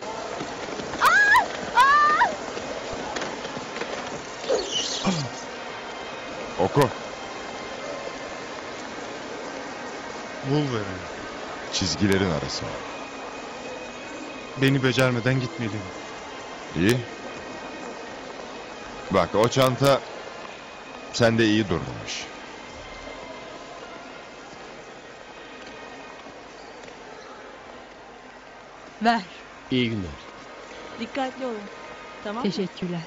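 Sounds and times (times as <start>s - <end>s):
shopping mall ambience: 0.0s - 33.0s.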